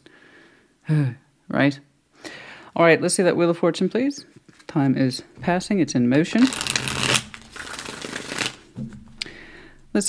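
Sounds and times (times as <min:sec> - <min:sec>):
cards being riffle-shuffled: 0:06.3 - 0:08.8.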